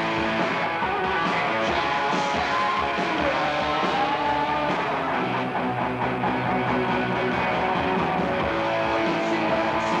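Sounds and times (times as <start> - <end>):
bass: 0.0 - 10.0
drums: 0.0 - 10.0.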